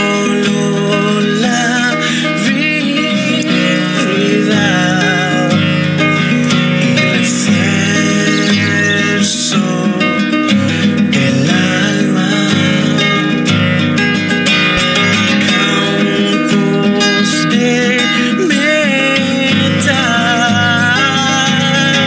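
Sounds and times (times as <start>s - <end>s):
man singing: 0.0s - 13.7s, 14.8s - 22.0s
nylon-string guitar playing: 0.0s - 22.0s.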